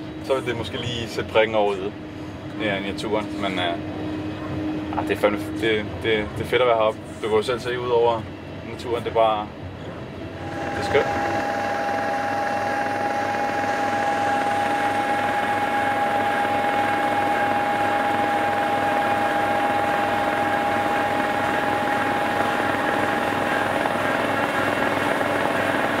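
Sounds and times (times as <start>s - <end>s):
snowblower engine whining: 10.2s - 26.0s.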